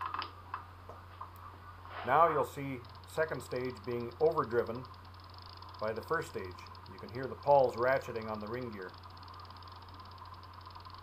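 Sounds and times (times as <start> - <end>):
steady low hum: 0.0 - 11.0
metallic clicks of bicycle hub: 2.5 - 11.0.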